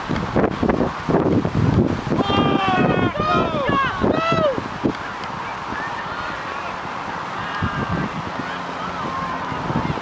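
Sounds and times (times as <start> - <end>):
wind noise: 0.0 - 10.0
distant shouting players: 2.2 - 10.0.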